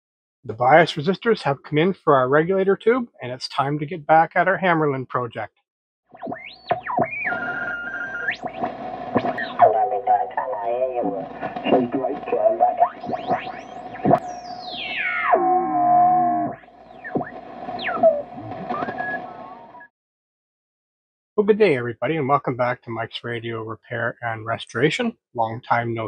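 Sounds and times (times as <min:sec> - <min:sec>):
whistles gliding up and down: 0:06.2 - 0:08.4, 0:16.9 - 0:19.9.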